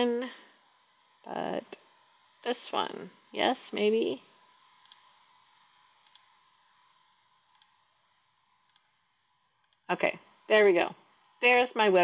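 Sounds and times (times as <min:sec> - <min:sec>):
computer mouse clicks: 0:04.8 - 0:05.3, 0:06.0 - 0:06.4, 0:07.5 - 0:07.8, 0:08.6 - 0:08.9, 0:09.6 - 0:09.9.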